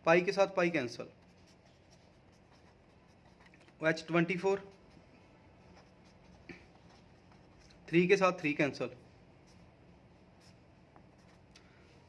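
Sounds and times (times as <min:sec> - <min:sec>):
pen scratching on paper: 0:01.1 - 0:07.9, 0:09.4 - 0:11.5.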